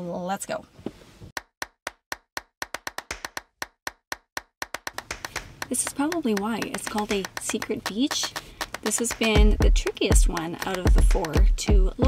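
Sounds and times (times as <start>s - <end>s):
rapid sharp clicks or claps: 1.4s - 12.0s.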